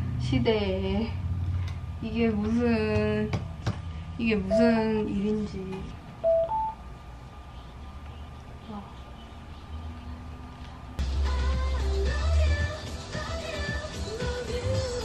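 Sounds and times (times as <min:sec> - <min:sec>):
pop song with singing: 0:11.0 - 0:15.0.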